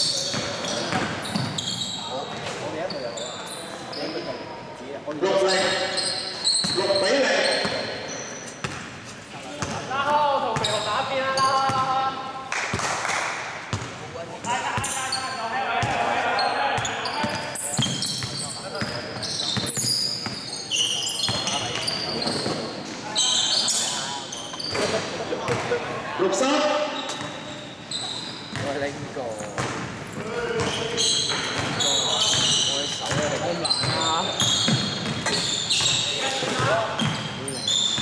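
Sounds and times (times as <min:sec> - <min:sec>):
sneaker squeaks: 0:00.0 - 0:04.5, 0:05.2 - 0:09.9, 0:10.5 - 0:12.1, 0:13.7 - 0:25.8, 0:26.4 - 0:38.0.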